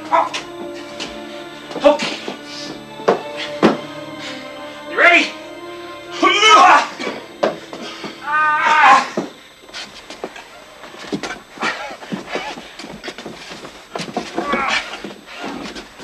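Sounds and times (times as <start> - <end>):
drawn-out vocal cries: 0.0 - 9.6
faint music bed: 0.0 - 16.0.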